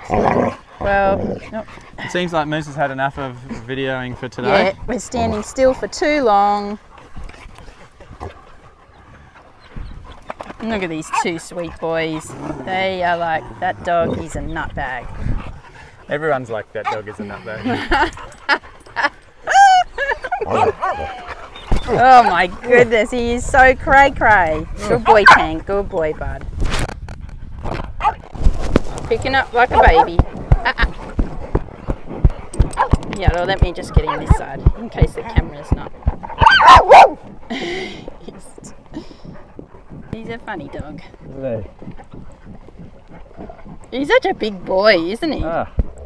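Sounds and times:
low thumps: 25.4 - 37.6
clothing rustle on microphone: 26.3 - 32.2.

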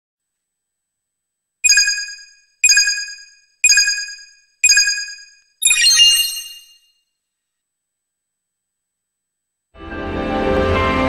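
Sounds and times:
bright electronic chime: 1.6 - 7.0.

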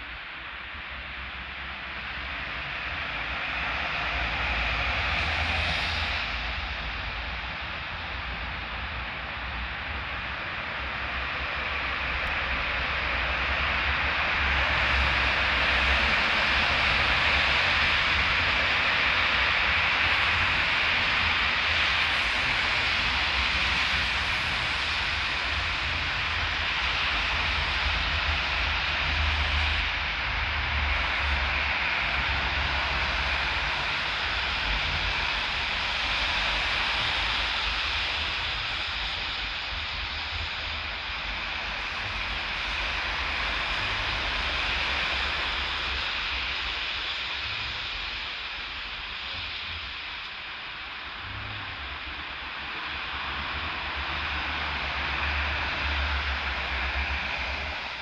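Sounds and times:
car tyres hissing on wet asphalt: 0.0 - 58.0.

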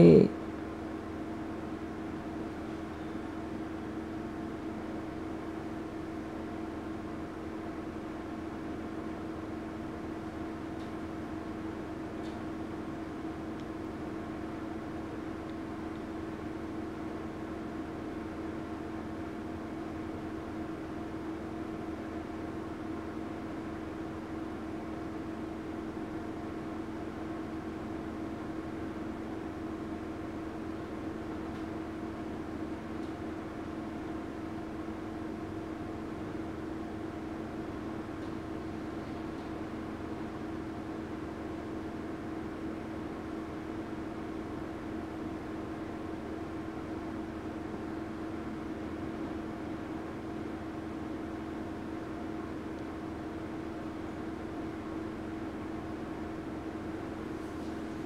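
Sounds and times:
machine hum with low tone: 0.0 - 58.0.

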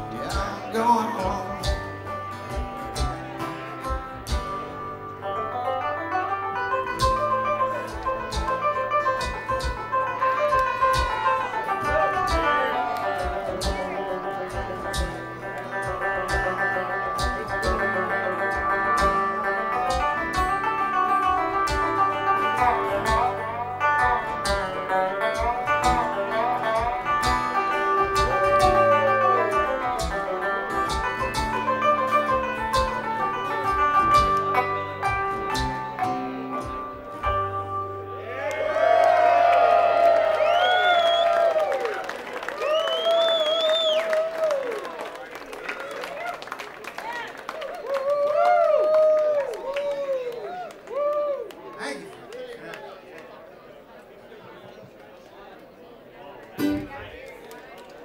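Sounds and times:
bluegrass banjo guitar and bass: 0.0 - 38.9, 56.5 - 57.2
crowd cheering and whooping: 11.1 - 13.6, 28.2 - 29.7, 38.2 - 51.8.

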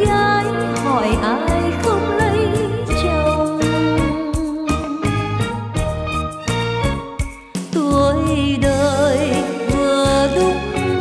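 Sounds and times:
band with bass and percussion: 0.0 - 11.0.

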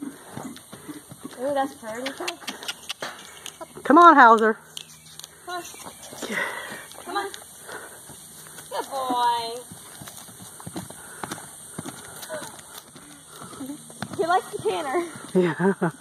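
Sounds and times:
hooves knocking on dirt: 0.0 - 16.0.

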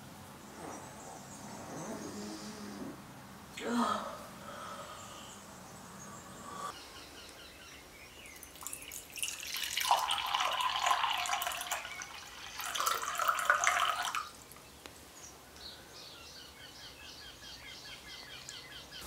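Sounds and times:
faint birds chirping: 0.0 - 19.0
water pouring into cup: 8.4 - 14.3.

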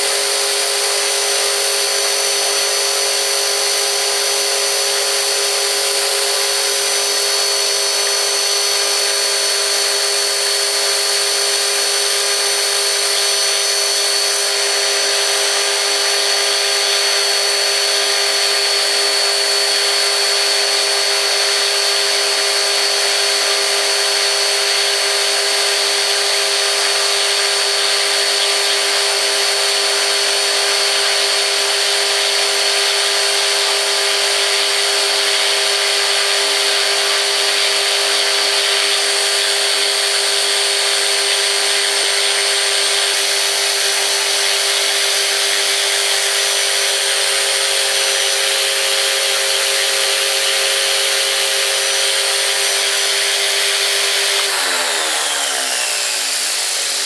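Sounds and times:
electric motor whine: 0.0 - 57.0
rotor rushing air: 54.4 - 57.0.

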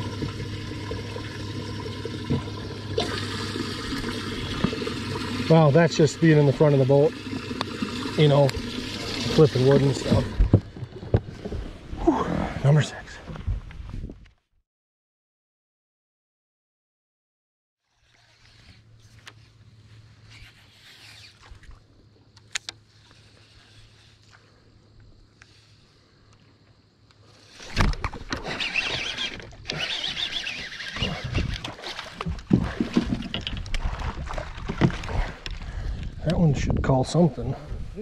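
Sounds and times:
rubbing against microphone: 18.0 - 21.7.

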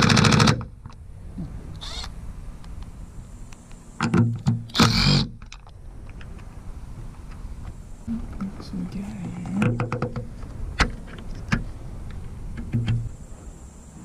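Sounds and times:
cordless drill spinning: 1.8 - 2.1
clicks and taps of hard parts: 9.5 - 11.6.

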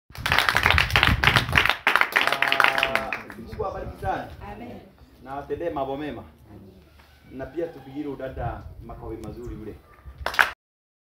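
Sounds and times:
people clapping: 0.1 - 3.7, 10.2 - 10.6.

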